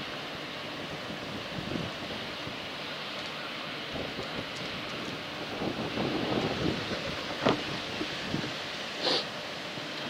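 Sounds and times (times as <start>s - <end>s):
wind noise on microphone: 0.9s - 2.6s, 3.9s - 8.7s.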